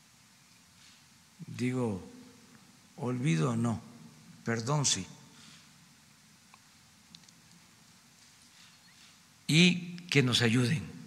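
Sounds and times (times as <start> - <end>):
faint clicks: 6.5 - 8.3.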